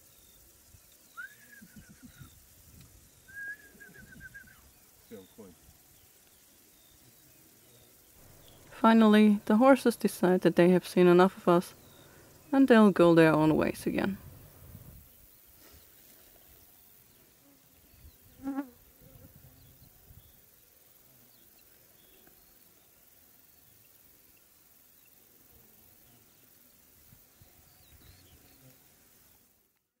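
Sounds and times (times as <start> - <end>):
insect buzzing past: 0.0 - 29.8
faint meadow background: 0.0 - 30.0.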